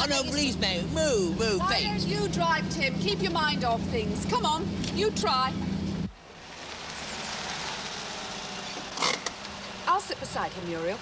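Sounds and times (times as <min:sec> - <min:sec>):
utility vehicle engine: 0:00.0 - 0:11.0.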